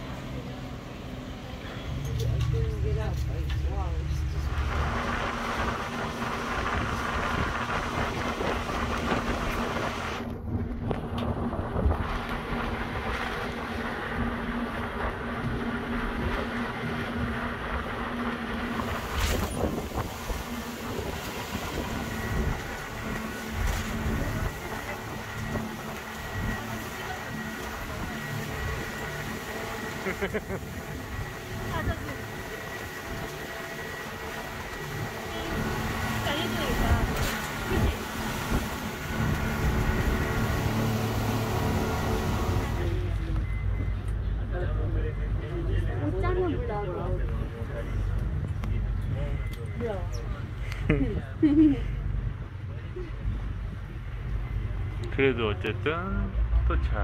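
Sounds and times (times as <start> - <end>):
motorboat engine running: 0.0 - 57.0
water noise: 0.0 - 57.0
rushing wind: 3.7 - 44.0.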